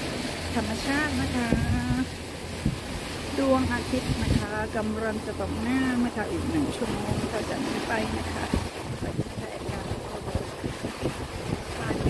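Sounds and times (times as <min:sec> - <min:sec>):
boat engine drone: 0:00.0 - 0:12.0
wind and water noise: 0:00.0 - 0:12.0.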